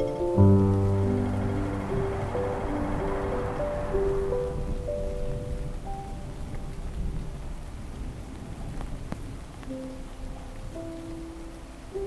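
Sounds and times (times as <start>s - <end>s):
heavy rain: 0.0s - 12.0s
thunder rumbling: 0.0s - 12.0s.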